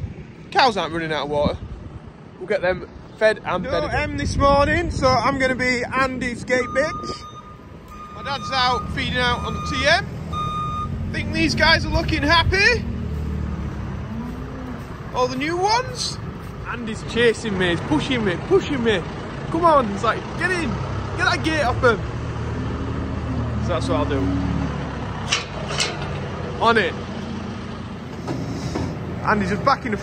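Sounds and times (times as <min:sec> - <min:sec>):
diesel engine rumbling: 0:00.0 - 0:30.0.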